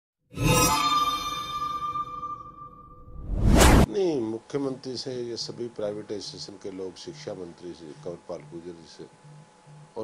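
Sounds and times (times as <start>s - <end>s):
loud whoosh: 3.1s - 3.9s.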